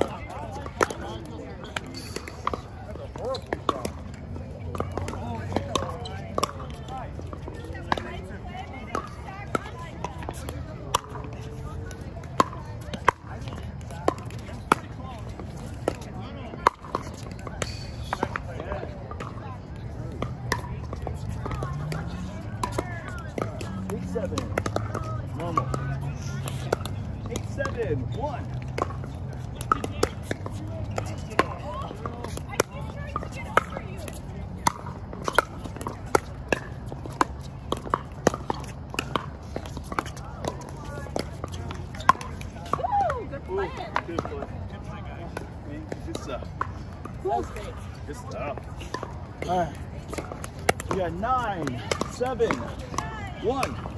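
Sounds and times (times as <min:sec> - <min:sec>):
faint chatter: 0:00.0 - 0:53.9.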